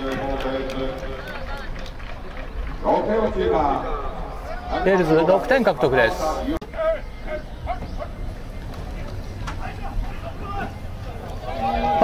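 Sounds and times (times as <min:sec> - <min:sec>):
people shouting and cheering: 0:00.0 - 0:12.0.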